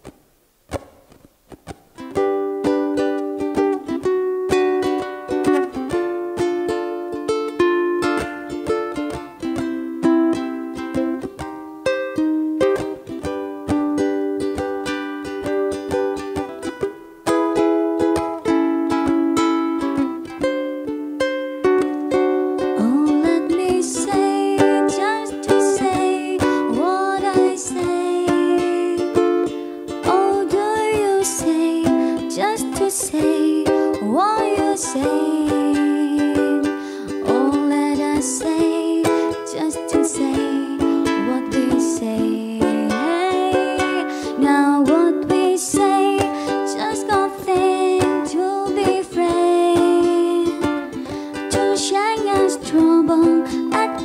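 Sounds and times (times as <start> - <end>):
ukulele melody: 0.0 - 54.0
woman singing: 22.6 - 54.0.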